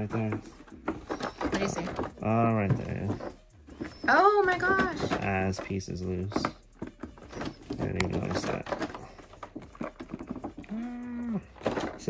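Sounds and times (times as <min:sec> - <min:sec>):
plastic box clicks: 0:00.0 - 0:12.0.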